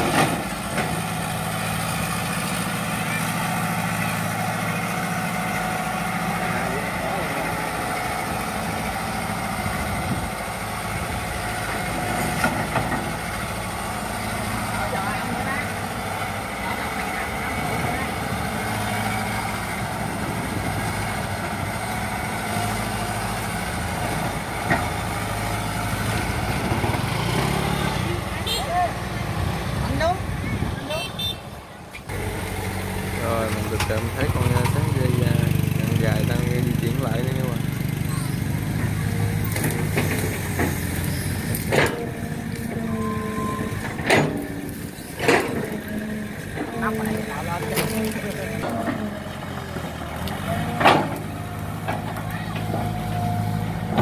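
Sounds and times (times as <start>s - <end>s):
excavator diesel engine running: 0.0s - 54.0s.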